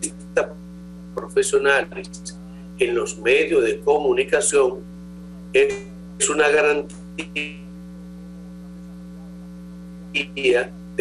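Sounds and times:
electrical mains hum: 0.0 - 11.0
man's voice: 1.2 - 4.8, 5.6 - 7.6, 10.2 - 10.7.

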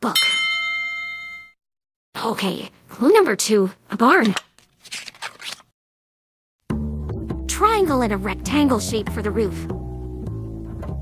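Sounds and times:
bell-like chime ding: 0.2 - 1.6.

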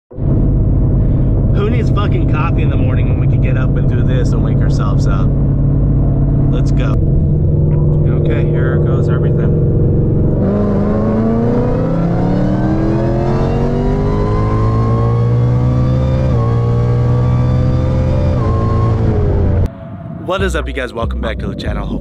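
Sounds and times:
car engine at full throttle: 0.1 - 19.8.

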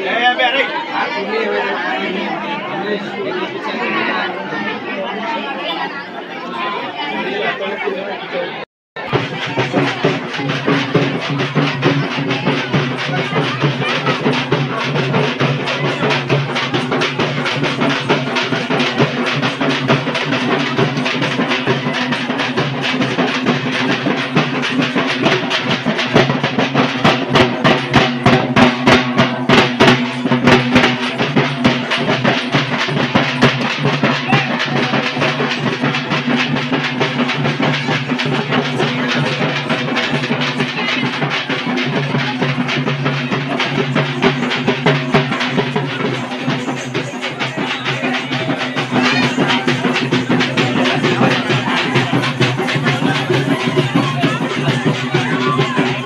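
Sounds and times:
frame drums beaten with sticks: 9.0 - 56.0.

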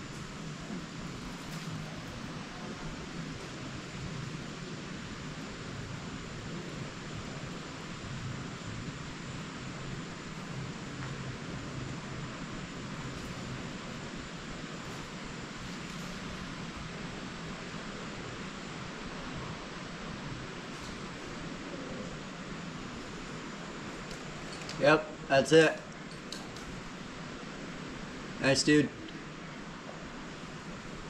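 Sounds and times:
outdoor background hiss: 0.0 - 31.0.

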